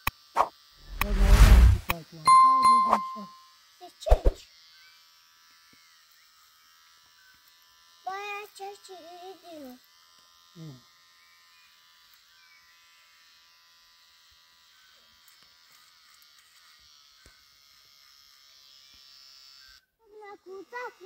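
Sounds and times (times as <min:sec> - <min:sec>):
person speaking: 0:00.9 - 0:03.4
electric hair clipper buzzing: 0:03.5 - 0:21.0.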